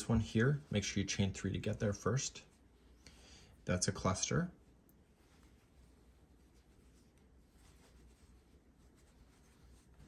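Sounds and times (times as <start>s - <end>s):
yarn rubbing on crochet hook: 5.2s - 10.0s.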